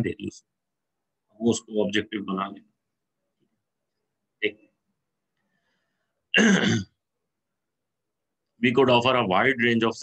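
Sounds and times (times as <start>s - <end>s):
man clearing his throat: 6.3s - 7.0s.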